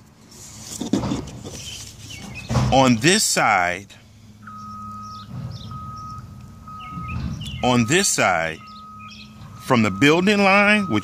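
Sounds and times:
vehicle reversing alarm beeping: 0:04.3 - 0:11.0.

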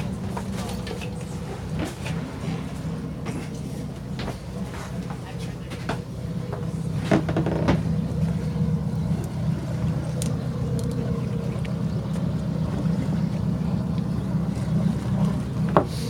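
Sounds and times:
boat engine humming: 0:00.0 - 0:16.0.

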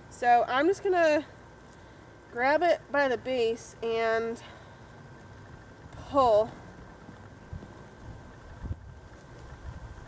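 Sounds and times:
wind rumble on microphone: 0:05.4 - 0:10.0.

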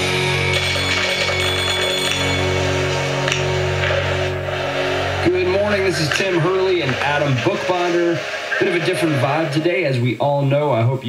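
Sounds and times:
country music on radio: 0:04.6 - 0:10.1.

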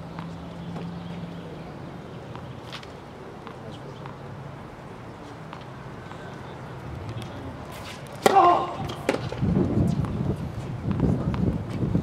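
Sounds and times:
racket striking tennis ball: 0:07.7 - 0:10.2.

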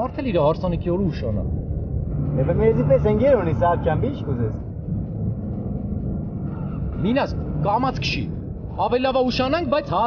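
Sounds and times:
men talking: 0:00.0 - 0:01.6, 0:02.3 - 0:04.7, 0:07.0 - 0:10.0.

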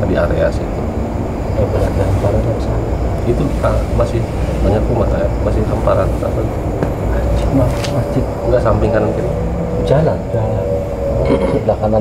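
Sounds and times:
men talking: 0:00.0 - 0:12.0
steady low rumble: 0:00.0 - 0:12.0.

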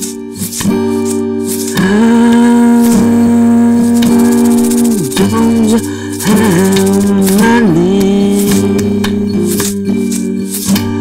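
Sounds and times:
quick percussion ticks: 0:04.0 - 0:07.6.

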